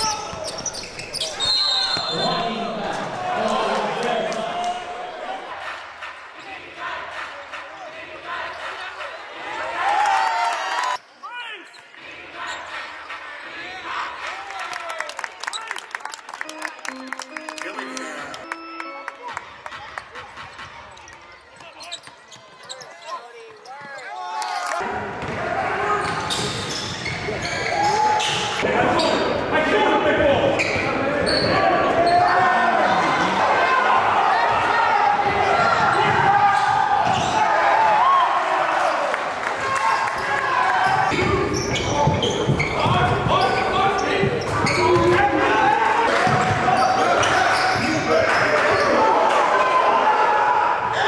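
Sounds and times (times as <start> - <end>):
players' voices echoing: 0.0 - 9.9, 16.4 - 51.0.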